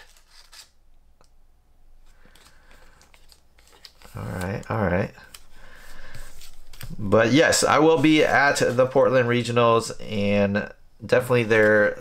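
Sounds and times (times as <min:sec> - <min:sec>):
cards sliding and rubbing: 0:00.0 - 0:00.8, 0:02.0 - 0:04.6, 0:05.2 - 0:09.2.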